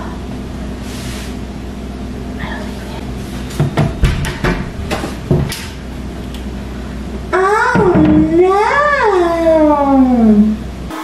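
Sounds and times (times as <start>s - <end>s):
steady low hum: 0.0s - 11.0s
cupboard door knocks and clicks: 3.6s - 5.6s.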